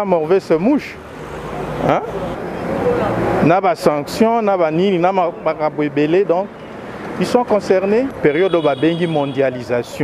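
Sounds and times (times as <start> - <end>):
road traffic noise: 0.0 - 10.0
vehicle passing close: 0.3 - 10.0.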